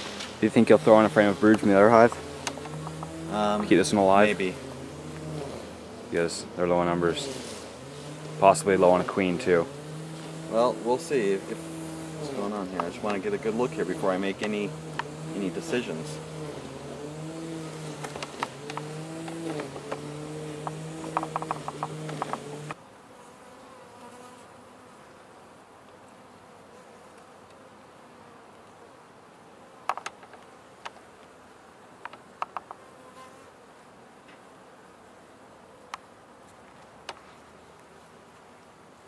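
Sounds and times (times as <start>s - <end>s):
bees buzzing: 0.0s - 39.0s
wooden hive frames clicking: 1.4s - 4.0s, 12.1s - 16.3s, 17.4s - 22.8s, 29.9s - 31.1s, 32.0s - 32.8s.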